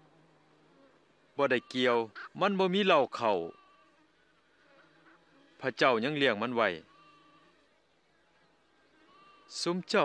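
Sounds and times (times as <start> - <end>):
faint steady hum: 0.0 - 10.0
man speaking loudly: 9.6 - 10.0.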